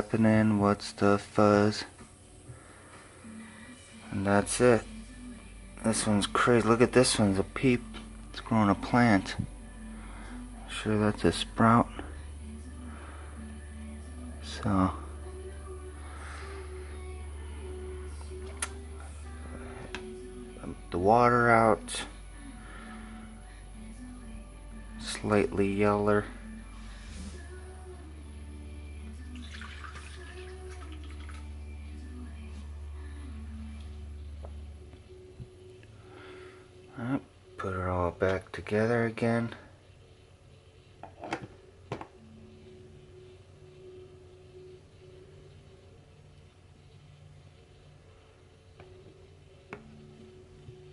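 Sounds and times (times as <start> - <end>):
steady low hum: 0.0 - 29.4, 30.2 - 50.9
faint background music: 0.0 - 50.9.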